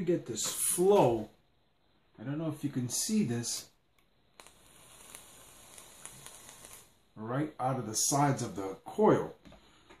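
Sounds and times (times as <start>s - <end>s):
vape coils sizzling and popping: 2.8s - 7.2s.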